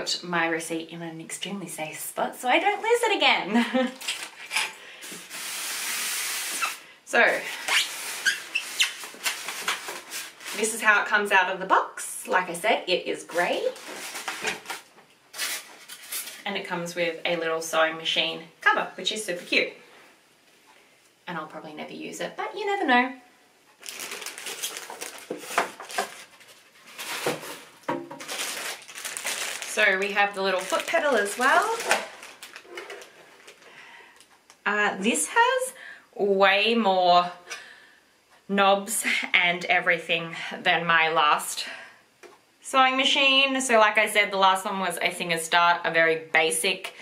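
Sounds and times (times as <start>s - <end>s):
polystyrene foam squeaking: 4.0s - 11.0s, 13.3s - 16.4s, 23.8s - 33.7s.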